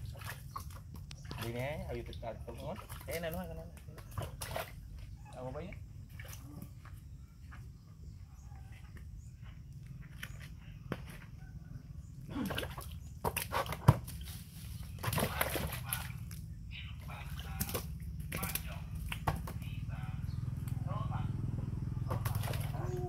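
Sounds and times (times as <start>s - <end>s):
water splashing: 0.0s - 4.9s, 12.3s - 20.6s, 22.0s - 23.0s
steady low hum: 0.0s - 23.0s.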